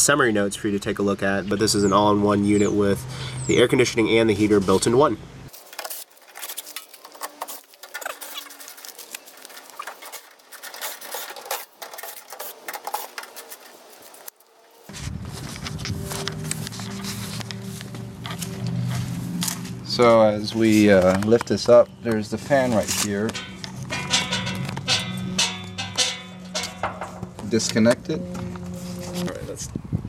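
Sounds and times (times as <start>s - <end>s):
low sound with held tones: 23.3s - 29.8s.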